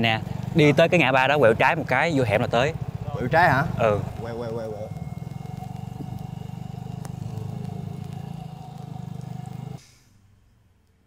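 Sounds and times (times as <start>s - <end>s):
motor scooter engine running: 0.0s - 9.8s.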